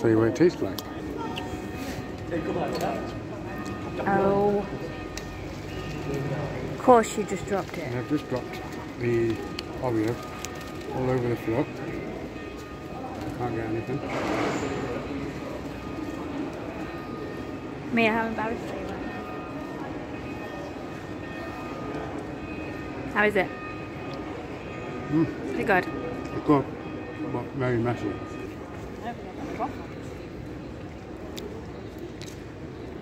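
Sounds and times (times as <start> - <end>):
city street background noise: 0.0 - 33.0.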